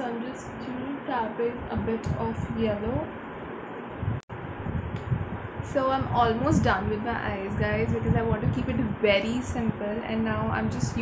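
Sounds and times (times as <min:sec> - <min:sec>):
low uneven rumble: 0:00.0 - 0:11.0
steady background hiss: 0:00.0 - 0:11.0.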